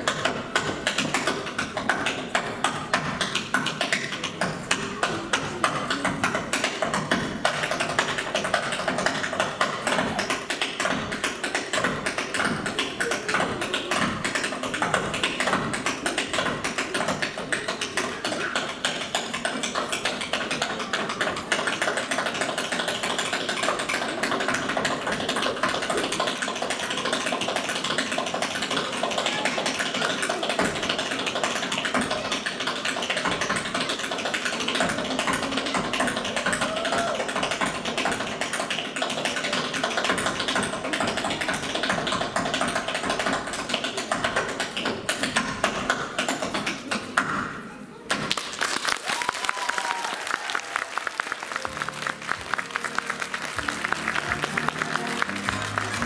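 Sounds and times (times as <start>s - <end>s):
tap shoes on stage floor: 0.0s - 47.5s, 48.1s - 56.0s.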